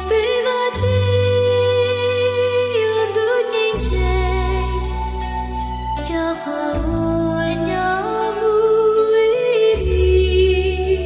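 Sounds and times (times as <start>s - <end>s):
instrumental backing track: 0.0s - 11.0s
woman singing slow song: 0.0s - 11.0s.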